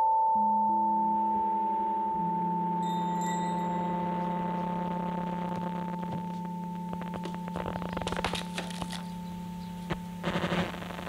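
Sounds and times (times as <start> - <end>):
bell-like electronic chord: 0.0 - 10.2
lower tone: 0.0 - 11.0
high chime shimmer: 0.3 - 5.4.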